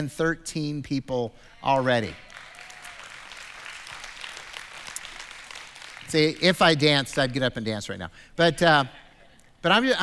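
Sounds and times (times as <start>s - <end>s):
crowd applauding: 2.1s - 7.3s.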